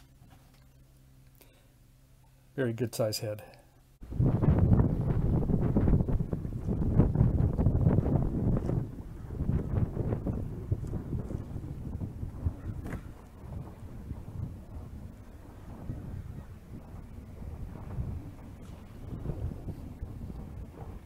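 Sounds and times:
wind buffeting microphone: 4.0 - 21.0.

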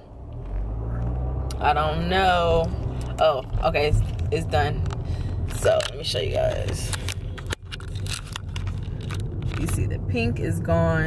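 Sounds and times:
car cabin rumble: 0.0 - 11.0
camera handling clicks and rustles: 4.8 - 9.7.

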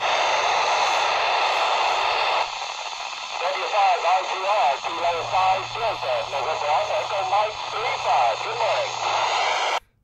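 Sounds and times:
radio static hiss: 0.0 - 9.8
weak voice over radio: 3.0 - 9.8.

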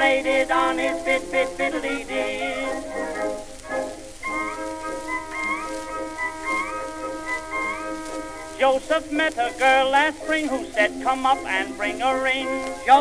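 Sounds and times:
male vocal duet singing: 0.0 - 2.9, 8.6 - 13.0
orchestra playing: 0.0 - 13.0
record surface hiss: 0.0 - 13.0.

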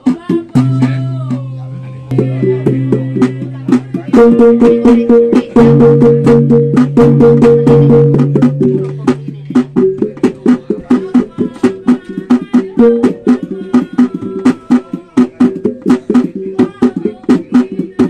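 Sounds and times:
hand drum fast even rhythm: 0.0 - 18.0.

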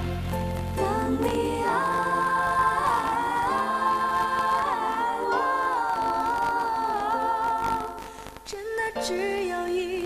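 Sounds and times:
musical backing: 0.0 - 10.0
woman singing into a microphone: 0.7 - 10.0.

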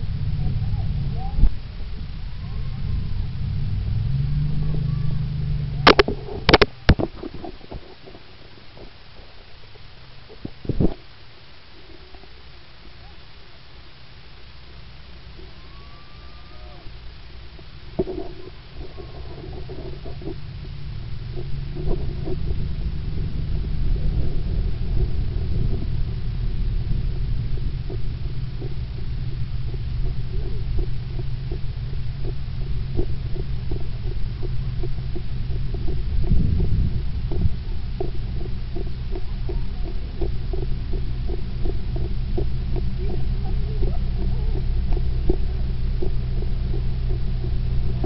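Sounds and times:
wind rumble on microphone: 0.0 - 11.2, 15.2 - 48.0.

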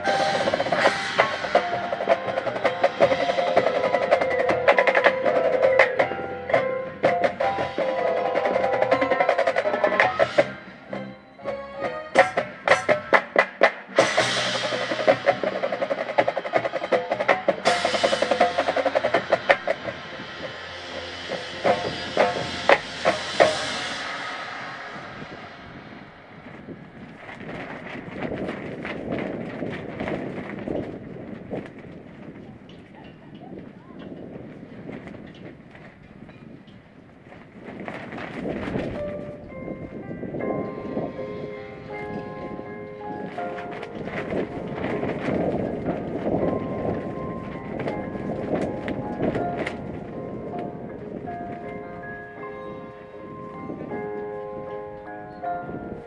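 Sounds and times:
mallet keyboards playing: 0.0 - 26.1, 39.0 - 56.0
drums and cymbals: 0.0 - 30.7, 38.3 - 54.1.

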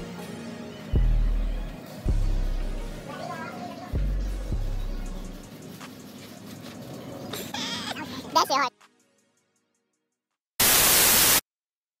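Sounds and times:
static hiss burst: 10.6 - 11.4.

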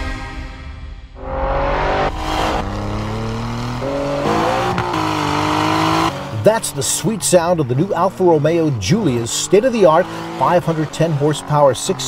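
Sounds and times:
car engine accelerating hard: 1.2 - 12.0.

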